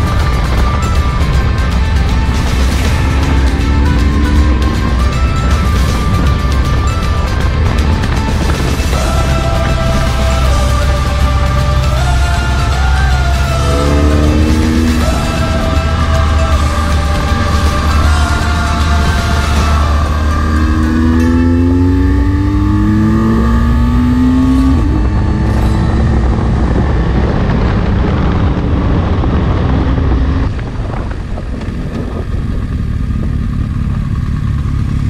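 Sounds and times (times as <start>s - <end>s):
low rush of wind: 0.0s - 35.0s
motorcycle engine shifting gears: 0.0s - 35.0s.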